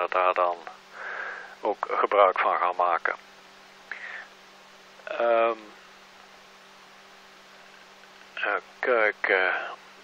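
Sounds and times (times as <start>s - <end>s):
even hiss: 0.0s - 10.0s
faint electrical hum: 0.0s - 10.0s.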